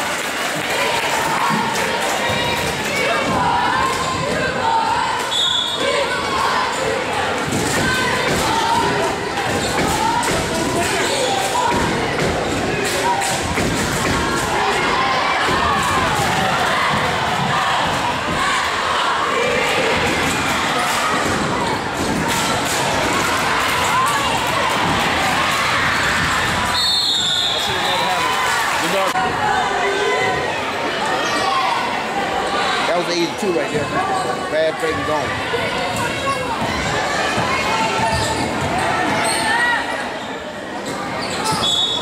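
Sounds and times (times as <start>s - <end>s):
crowd cheering and shouting: 0.0s - 42.0s
referee's whistle blast: 5.3s - 5.9s, 26.8s - 28.1s, 41.6s - 42.0s.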